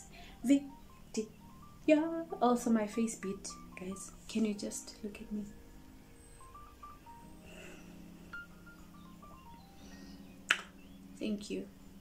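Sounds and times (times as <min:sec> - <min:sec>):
quiet background music: 0:00.0 - 0:12.0
finger snap: 0:10.4 - 0:10.8.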